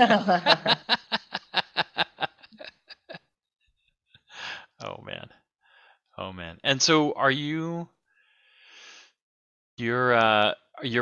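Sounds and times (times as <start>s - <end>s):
person laughing: 0.0s - 3.3s
breathy sound: 4.3s - 4.8s.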